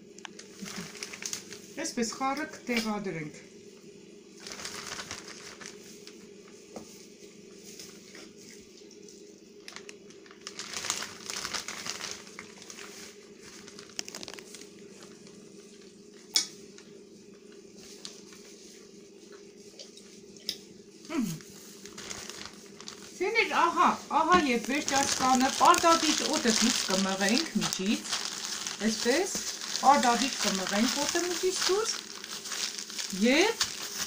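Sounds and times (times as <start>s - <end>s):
steady low hum: 0.0s - 34.0s
plastic bag crinkling: 0.2s - 1.8s, 4.4s - 6.2s, 9.6s - 15.9s, 21.1s - 34.0s.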